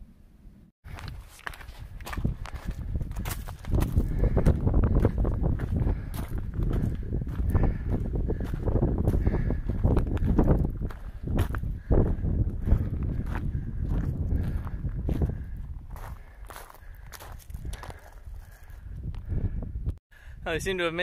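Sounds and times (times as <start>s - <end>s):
footsteps on loose stones: 0.8s - 18.9s.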